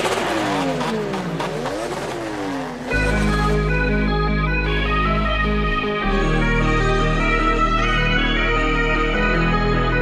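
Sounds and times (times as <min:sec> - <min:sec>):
synth melody: 0:02.9 - 0:10.0
deep sustained bass: 0:03.0 - 0:10.0.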